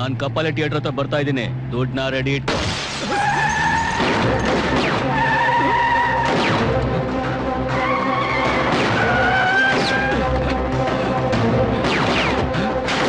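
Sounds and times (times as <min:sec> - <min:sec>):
dramatic orchestral score: 0:04.0 - 0:13.0.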